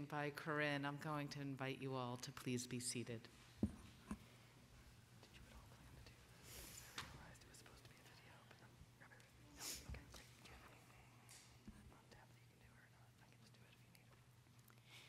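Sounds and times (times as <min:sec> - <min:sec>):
steady low hum: 0:00.0 - 0:15.0
faint whispers: 0:05.2 - 0:15.0.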